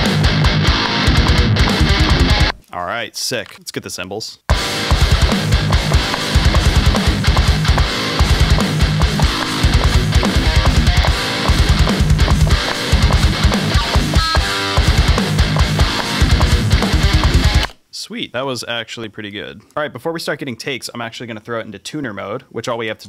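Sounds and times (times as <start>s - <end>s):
distorted electric guitar riff: 0.0s - 2.6s, 4.5s - 17.8s
programmed drums: 0.0s - 2.6s, 4.5s - 17.8s.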